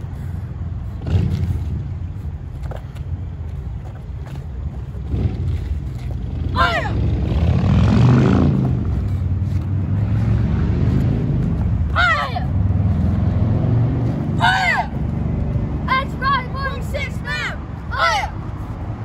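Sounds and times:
steady low rumble: 0.0 - 19.0
child's karate shout: 6.5 - 7.0, 11.9 - 12.6, 14.4 - 15.0, 15.9 - 18.4.

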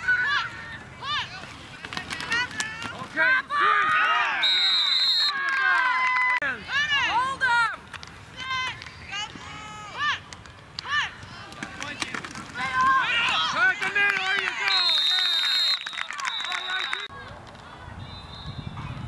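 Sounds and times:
spectators shouting and cheering: 2.5 - 7.8, 8.4 - 17.1
referee's whistle blasts: 4.4 - 5.4, 14.6 - 17.1.

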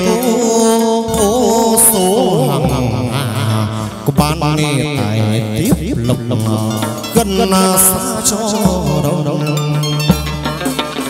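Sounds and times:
chant-like singing: 0.0 - 10.2
instrumental accompaniment: 0.0 - 11.0
sharp percussion stroke: 0.0 - 11.0.

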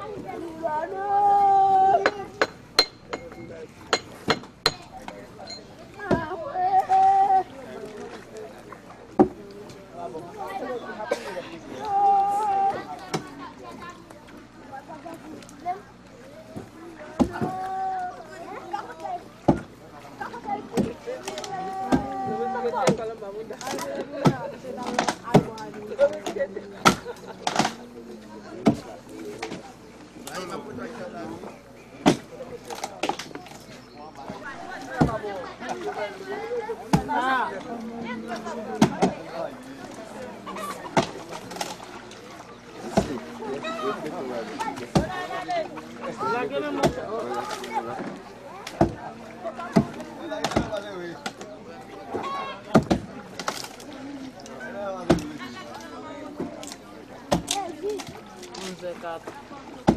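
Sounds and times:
people talking: 0.0 - 2.5, 4.6 - 59.9.

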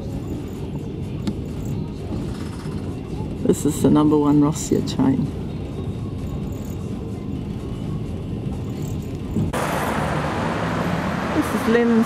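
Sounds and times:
train rumbling inside carriage: 0.0 - 12.0
road traffic hiss: 9.1 - 12.0.

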